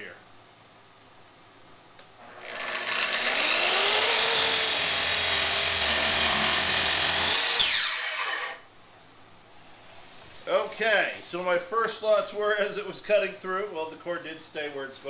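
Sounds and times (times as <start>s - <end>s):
track saw cutting wood: 2.2s - 8.6s.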